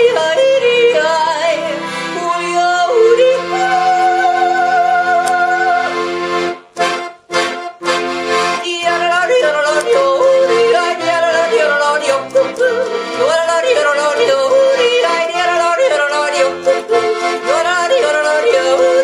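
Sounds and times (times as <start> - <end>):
woman yodeling: 0.0 - 5.9, 8.6 - 19.0
piano accordion: 0.0 - 19.0.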